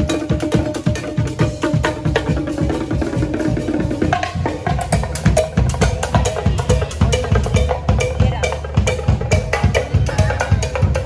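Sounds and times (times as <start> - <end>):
drum kit beat: 0.0 - 11.0
live band playing upbeat music: 0.0 - 11.0.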